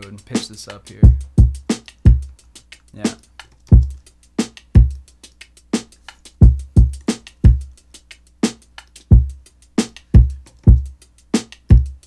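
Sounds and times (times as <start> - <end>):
hip-hop drum loop: 0.0 - 12.0.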